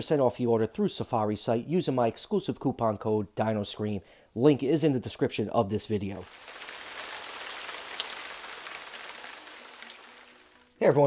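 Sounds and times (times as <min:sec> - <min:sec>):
steady hiss: 0:06.2 - 0:11.0.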